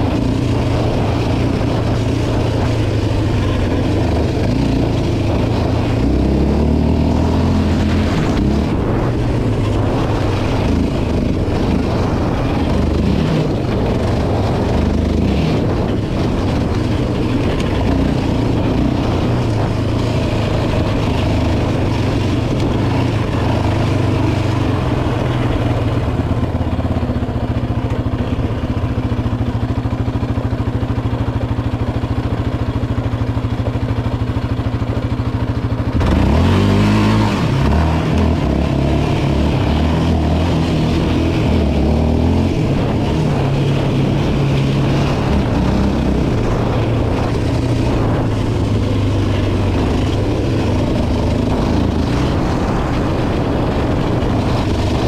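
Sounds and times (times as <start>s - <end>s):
quad engine revving: 0.0s - 29.3s, 34.4s - 55.0s.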